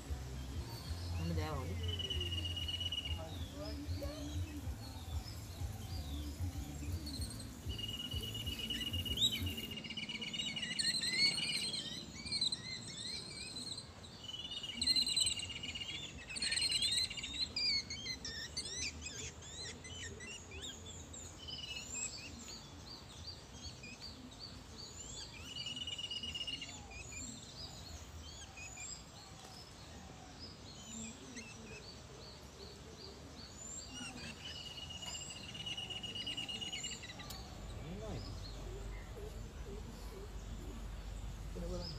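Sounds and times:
birds chirping and calling: 0.0s - 41.9s.

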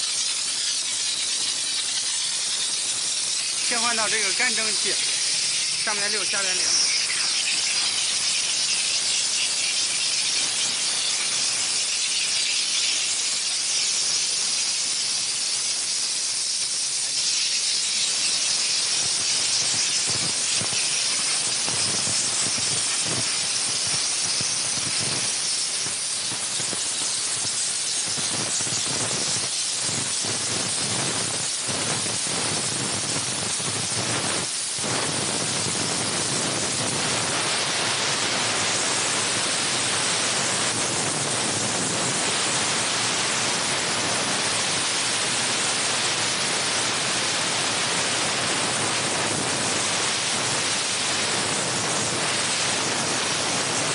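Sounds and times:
steam hissing from lance: 0.0s - 53.9s.

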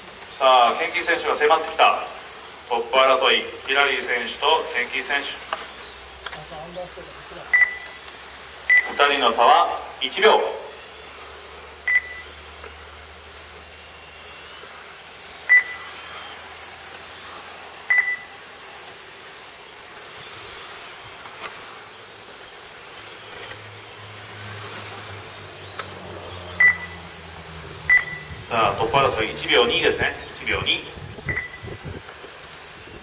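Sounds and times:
rc car motors whining: 0.0s - 33.0s
steady low hum: 0.0s - 33.0s
short electronic beeps: 5.8s - 8.0s, 8.6s - 9.2s, 11.8s - 12.4s, 15.4s - 16.4s, 17.9s - 18.4s, 26.5s - 27.1s, 27.8s - 31.8s.

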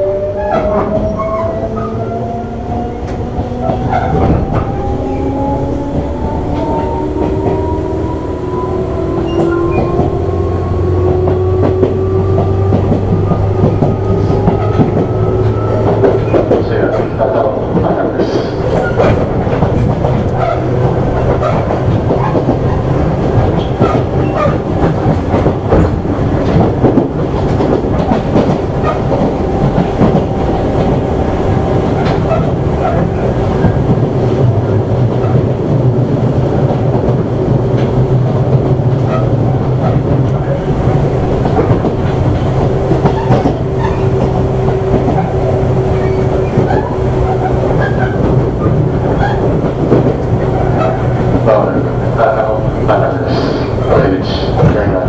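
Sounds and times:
train wheels clacking over rail joints: 11.0s - 55.0s.

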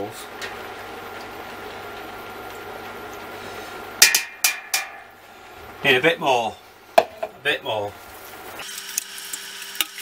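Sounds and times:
utensils knocking on steel kettle: 4.0s - 5.1s.

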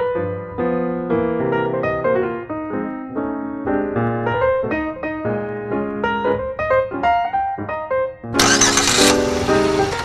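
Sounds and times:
piano music: 0.0s - 10.0s
car engine cranking and starting: 8.4s - 10.0s.

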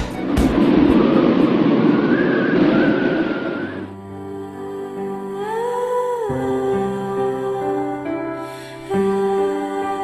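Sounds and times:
loud steady rushing noise: 0.0s - 4.6s
faint high whine: 0.8s - 4.4s.

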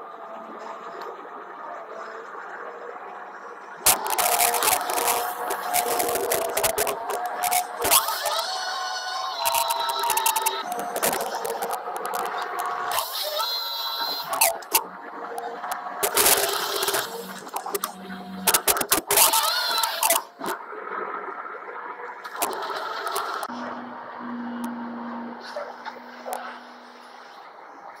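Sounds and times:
low machine hum: 20.3s - 28.0s.

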